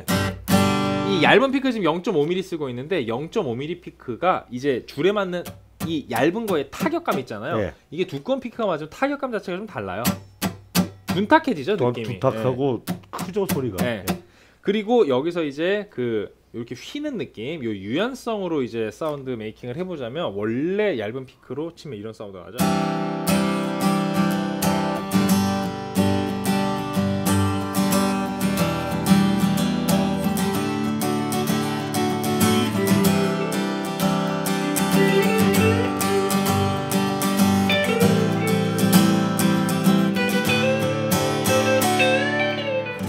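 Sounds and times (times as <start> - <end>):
acoustic guitar strummed: 0.0 - 1.4, 10.0 - 11.3, 22.6 - 43.0.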